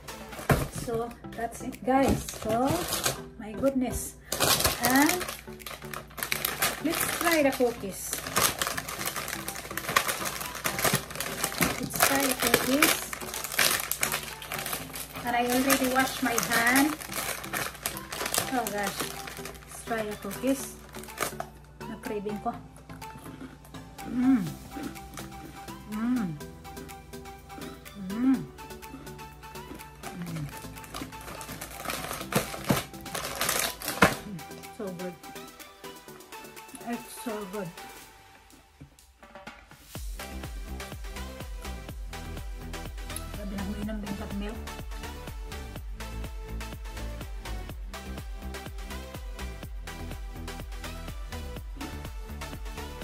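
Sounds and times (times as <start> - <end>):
background music: 0.0 - 53.0
plastic packet crinkling: 2.2 - 3.2, 4.2 - 21.7, 29.7 - 34.6.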